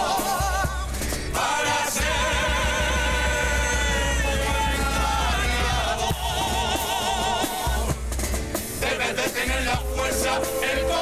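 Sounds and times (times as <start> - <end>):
choir singing in close harmony: 0.0 - 8.0, 8.8 - 11.0
guitar accompaniment: 0.0 - 11.0
steady bass: 0.0 - 11.0.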